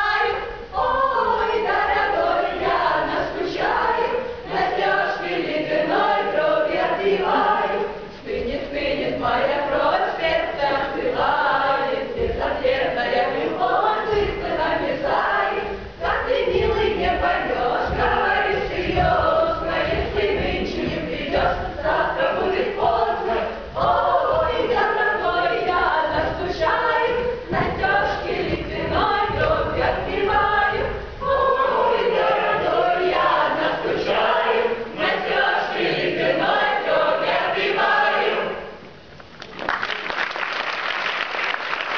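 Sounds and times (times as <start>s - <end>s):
choir singing: 0.0s - 38.8s.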